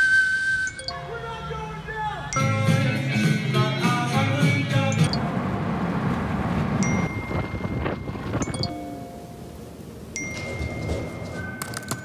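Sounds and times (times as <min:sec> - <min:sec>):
chime-like tones: 0:02.3 - 0:02.8, 0:06.8 - 0:09.2, 0:10.2 - 0:12.0.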